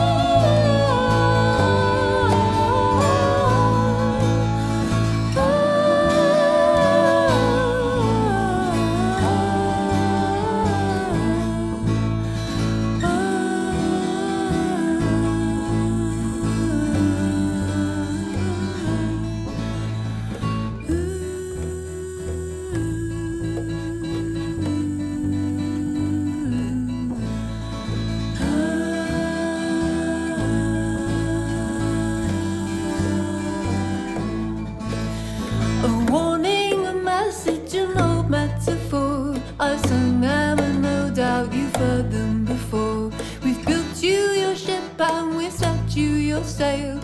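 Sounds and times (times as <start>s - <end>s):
acoustic guitar: 0.0s - 47.0s
plucked double bass: 0.0s - 47.0s
sliding held melody: 0.0s - 47.0s.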